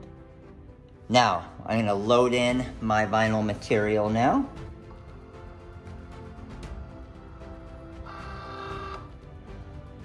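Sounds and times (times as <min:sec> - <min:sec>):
background music: 0:00.0 - 0:10.0
feed motor whine: 0:08.0 - 0:09.1.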